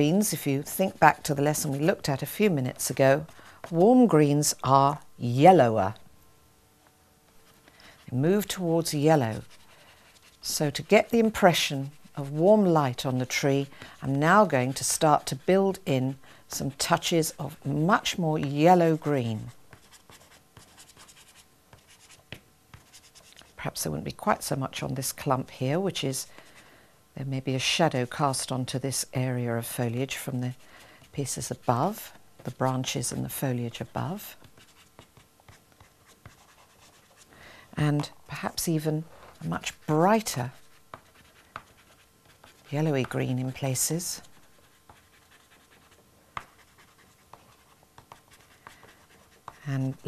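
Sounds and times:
pastel scratching on paper: 0:00.0 - 0:04.2, 0:07.5 - 0:23.6, 0:30.3 - 0:37.3, 0:39.5 - 0:50.0.

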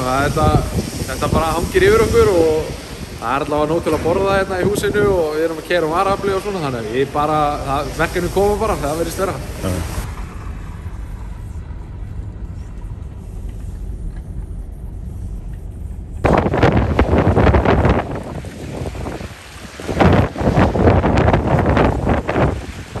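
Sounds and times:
traffic on a wet street: 0:00.0 - 0:23.0
wind buffeting microphone: 0:00.0 - 0:23.0.

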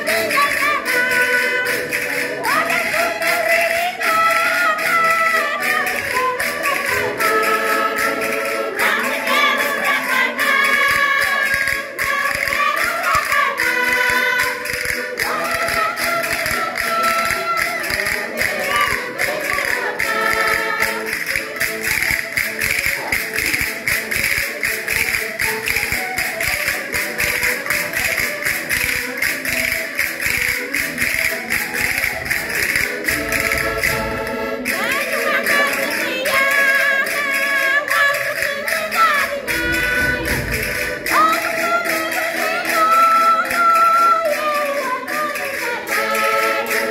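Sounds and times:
woman singing a folk song: 0:00.0 - 0:21.2, 0:34.6 - 0:46.9
voices singing along: 0:00.0 - 0:21.4, 0:32.0 - 0:46.9
tapping or clapping beat: 0:00.0 - 0:46.9.

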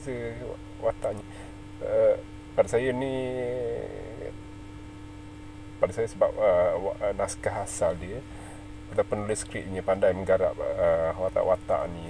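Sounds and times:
man speaking: 0:00.0 - 0:04.4, 0:05.8 - 0:08.3, 0:08.9 - 0:12.0
steady low hum: 0:00.0 - 0:12.0.

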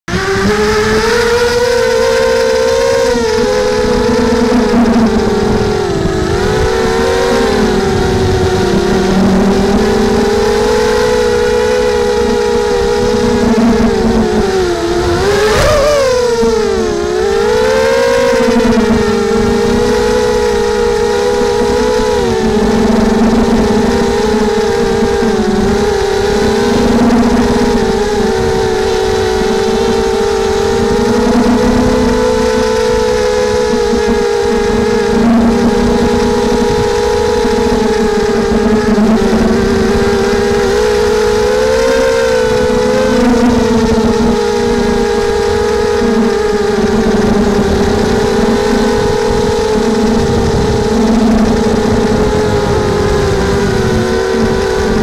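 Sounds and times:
drone motors and propellers whining: 0:00.0 - 0:55.0.

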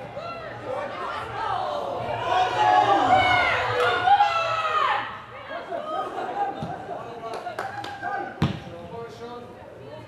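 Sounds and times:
football being kicked: 0:08.4 - 0:08.7.

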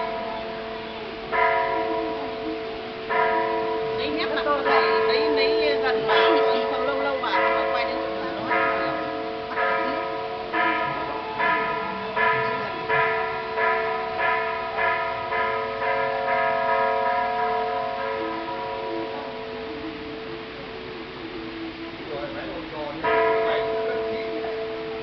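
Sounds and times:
bell ringing: 0:03.1 - 0:20.9.

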